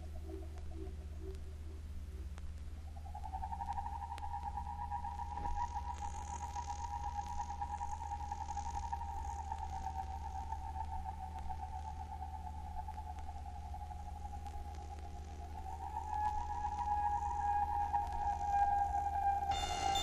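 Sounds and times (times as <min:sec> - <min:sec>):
steady low hum: 0:00.0 - 0:20.0
sustained electronic tone: 0:15.1 - 0:20.0
faint high shimmer: 0:19.5 - 0:20.0.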